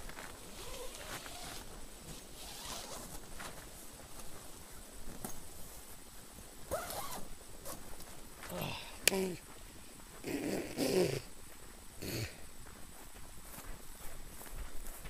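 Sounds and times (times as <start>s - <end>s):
footsteps through long grass: 12.6s - 15.0s.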